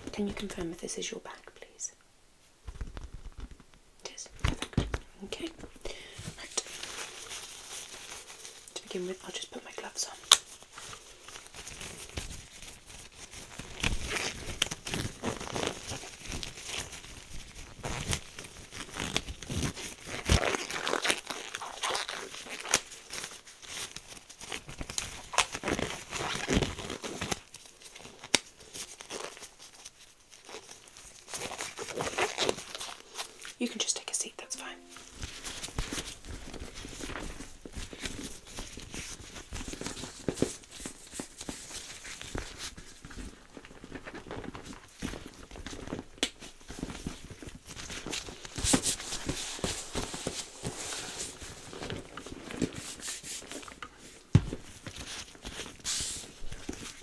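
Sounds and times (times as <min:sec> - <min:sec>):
nitrile gloves crinkling: 0:02.4 - 0:57.0
gloved hands handling handbag: 0:35.1 - 0:57.0.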